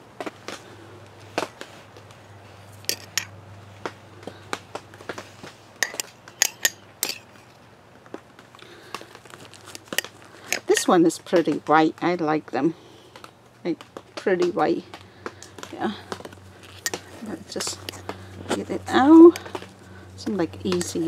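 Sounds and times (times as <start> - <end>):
plastic containers crinkling: 0.3 - 12.0.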